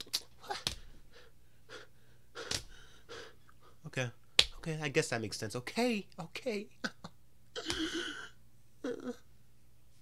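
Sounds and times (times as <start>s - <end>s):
man gasping breaths: 0.8s - 3.8s.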